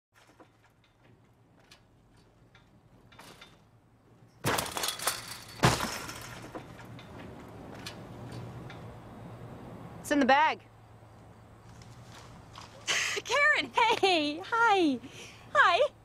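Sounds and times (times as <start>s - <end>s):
chain-link fence rattling: 0.2s - 9.0s.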